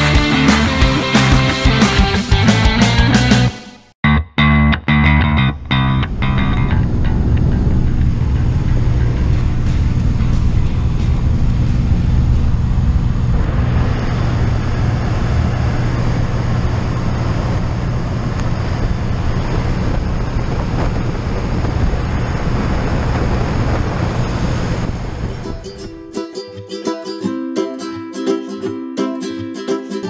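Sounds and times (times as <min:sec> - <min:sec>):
rock music: 0:00.0 - 0:12.5
propeller plane engine drone: 0:05.5 - 0:26.0
rush of wind: 0:06.0 - 0:26.2.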